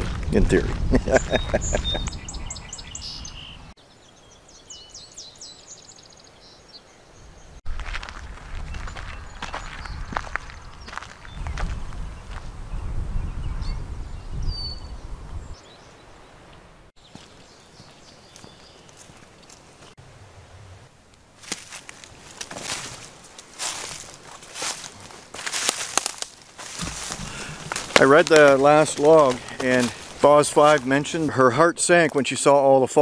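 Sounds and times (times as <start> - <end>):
footsteps and rustling: 0.0 - 2.2, 17.0 - 20.0, 21.4 - 31.3
birds chirping in trills: 0.8 - 7.6, 8.6 - 20.0.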